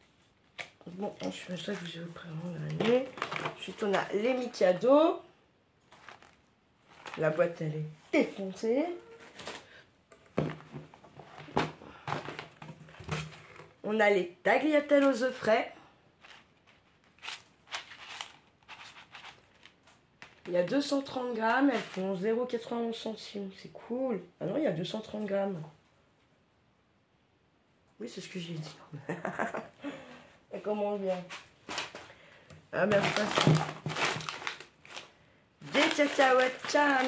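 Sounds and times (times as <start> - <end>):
plastic packaging crinkling: 0.5 - 4.6, 5.9 - 7.6, 16.2 - 20.5, 31.3 - 32.1, 32.8 - 37.0
cardboard box rustling and scraping: 32.9 - 35.0.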